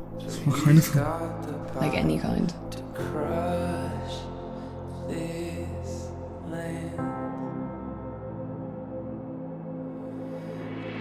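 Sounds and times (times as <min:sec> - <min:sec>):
slow sustained drone music: 0:00.0 - 0:11.0.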